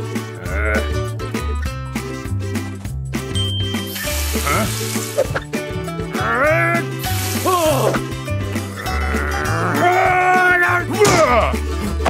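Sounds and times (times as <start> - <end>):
background music with bass line: 0.0 - 12.0
cartoon character frustrated groan: 0.4 - 1.0, 8.8 - 10.4.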